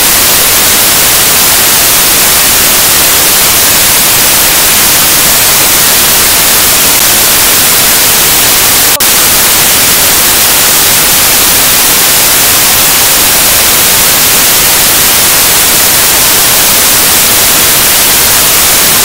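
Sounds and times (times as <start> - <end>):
static hiss: 0.0 - 19.0.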